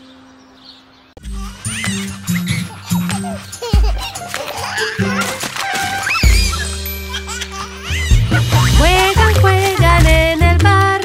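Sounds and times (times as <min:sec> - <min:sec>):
cartoon baby giggling: 0:01.2 - 0:10.5
upbeat children's music: 0:01.2 - 0:11.0.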